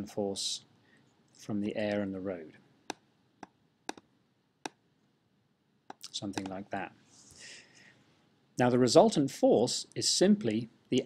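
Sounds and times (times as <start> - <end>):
faint computer mouse clicks: 5.9 - 6.6.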